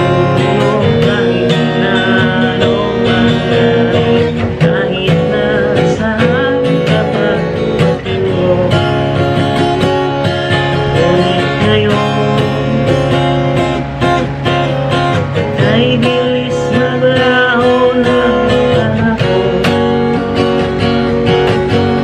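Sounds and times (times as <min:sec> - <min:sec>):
man singing: 0:00.0 - 0:14.2, 0:15.0 - 0:21.0
acoustic guitar strummed: 0:00.0 - 0:22.0.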